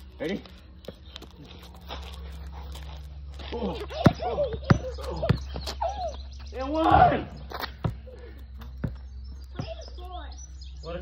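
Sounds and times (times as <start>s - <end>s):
basketball bouncing on concrete: 3.6s - 6.2s, 7.5s - 10.0s.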